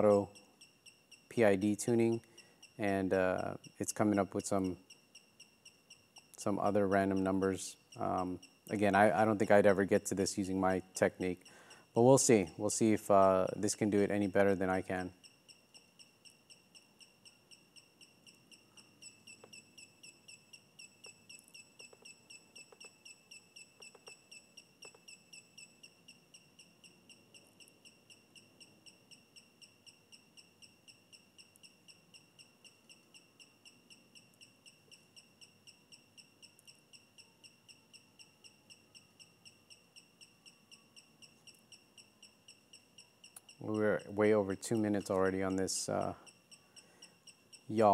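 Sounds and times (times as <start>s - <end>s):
motors high-pitched pulsing chirp: 0.0s - 47.9s
faint clicks: 18.0s - 25.2s, 34.2s - 44.1s.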